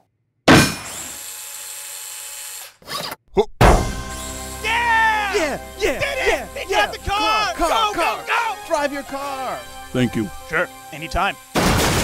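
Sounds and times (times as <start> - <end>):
toy car whirring: 1.0 - 3.2.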